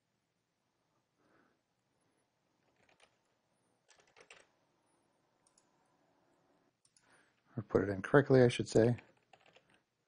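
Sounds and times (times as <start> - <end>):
keyboard keystrokes: 2.6 - 3.3, 3.9 - 4.5, 9.1 - 9.8.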